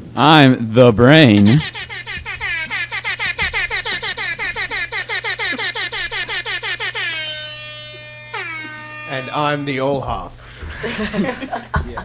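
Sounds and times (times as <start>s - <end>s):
air horn blasts: 7.0s - 10.3s.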